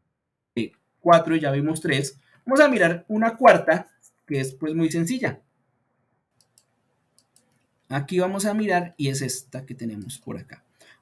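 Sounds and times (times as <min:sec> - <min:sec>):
faint mouse clicks: 0:06.3 - 0:07.9.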